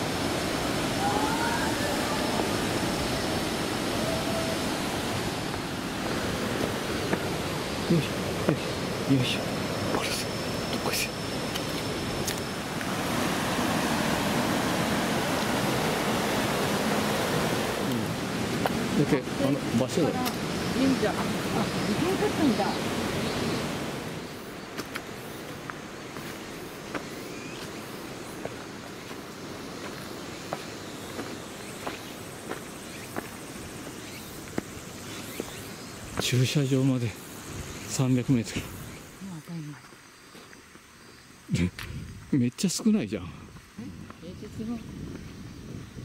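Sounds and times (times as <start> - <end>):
river water rushing over rocks: 0.0 - 24.3
indistinct voices talking: 18.9 - 22.9.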